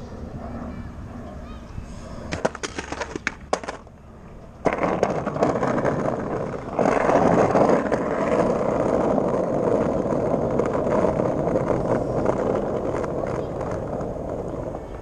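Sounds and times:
skateboard wheels rolling on stone: 0:02.2 - 0:15.0.

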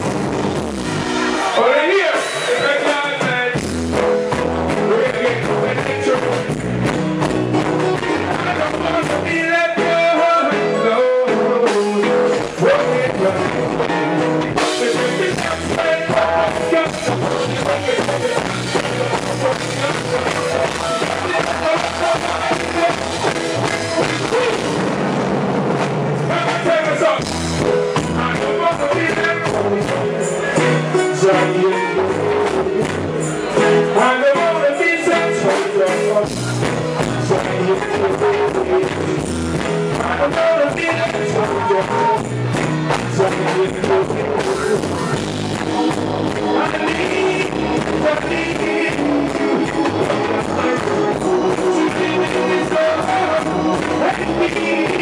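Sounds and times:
amplified reggae backing music: 0:00.0 - 0:55.0
man singing: 0:01.4 - 0:24.9, 0:26.2 - 0:55.0
person singing over a pa: 0:14.6 - 0:24.8, 0:39.9 - 0:42.3, 0:43.0 - 0:45.3, 0:46.3 - 0:55.0.

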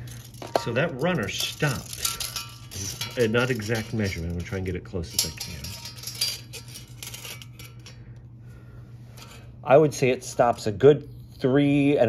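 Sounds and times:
tape measure clicking and rattling: 0:00.0 - 0:07.9
steady low hum: 0:00.0 - 0:12.0.

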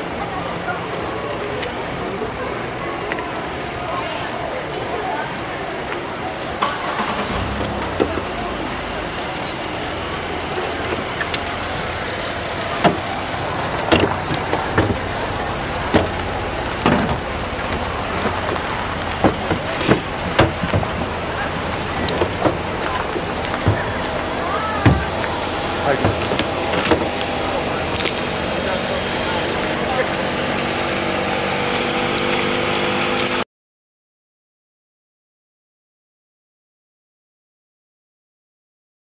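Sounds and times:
noisy rush: 0:00.0 - 0:33.4
street noise hiss and rumble: 0:00.0 - 0:33.4.

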